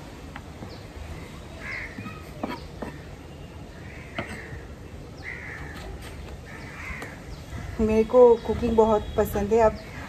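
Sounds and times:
crow cawing: 1.6 - 2.1, 5.2 - 5.8, 6.5 - 7.8.

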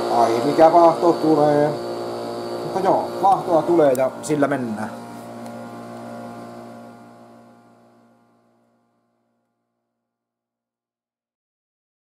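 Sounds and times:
coffee machine pump humming: 0.0 - 9.2.

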